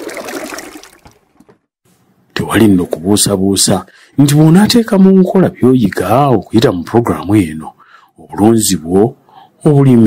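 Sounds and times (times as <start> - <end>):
liquid pouring into plastic basin: 0.0 - 1.6.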